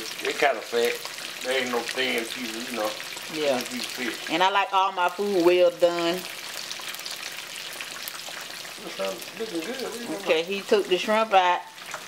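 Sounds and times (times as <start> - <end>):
fish sizzling in hot oil: 0.0 - 12.0.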